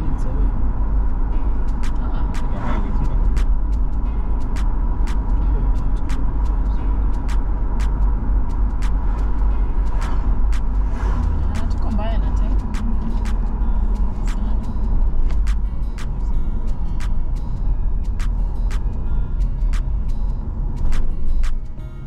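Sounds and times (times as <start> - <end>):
car road and engine rumble: 0.0 - 22.0
sharp repeating tick: 1.0 - 21.7.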